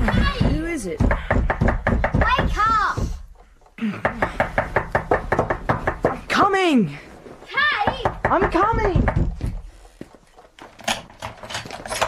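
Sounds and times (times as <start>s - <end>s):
rapid knocking on door: 0.0s - 6.4s, 7.8s - 9.8s.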